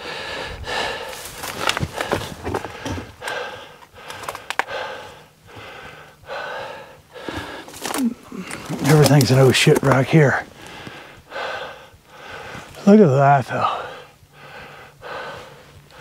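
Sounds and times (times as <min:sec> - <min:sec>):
man breathing heavily: 0:00.0 - 0:09.5, 0:10.2 - 0:16.0
twigs and leaves rustling: 0:00.8 - 0:06.2, 0:07.0 - 0:11.3.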